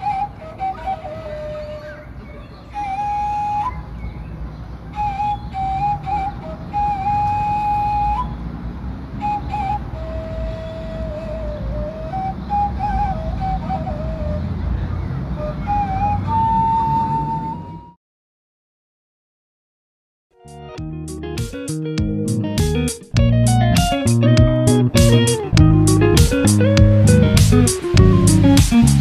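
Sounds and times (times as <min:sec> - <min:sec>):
flute-like solo melody: 0:00.0 - 0:04.2, 0:04.9 - 0:14.8, 0:15.4 - 0:18.0, 0:20.4 - 0:29.0
steady low rumble: 0:22.1 - 0:29.0.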